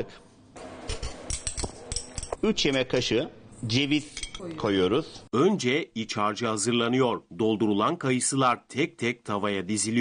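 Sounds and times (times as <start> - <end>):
metal spoon scraping in steel bowl: 0.8 - 2.4.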